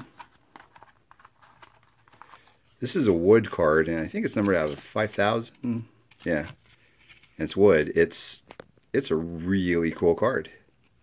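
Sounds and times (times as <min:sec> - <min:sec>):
card rustling in plastic pocket: 0:00.0 - 0:03.0, 0:04.0 - 0:07.6.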